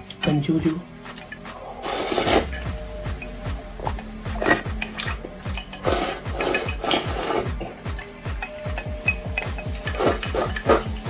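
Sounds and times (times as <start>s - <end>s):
background music with beat: 0.0s - 11.0s
person slurping food: 1.5s - 2.6s, 3.8s - 5.2s, 5.8s - 7.8s, 9.8s - 11.0s
chopsticks scraping ceramic bowl: 1.7s - 2.7s, 3.9s - 8.1s, 9.6s - 11.0s.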